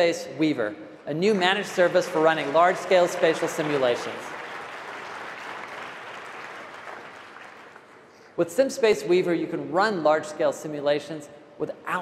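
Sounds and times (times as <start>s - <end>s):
audience applauding: 1.8s - 8.2s.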